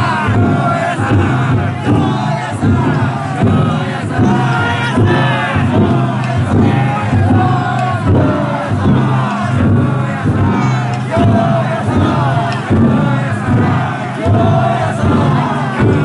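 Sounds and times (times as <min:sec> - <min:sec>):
crowd chanting and shouting: 0:00.0 - 0:16.0.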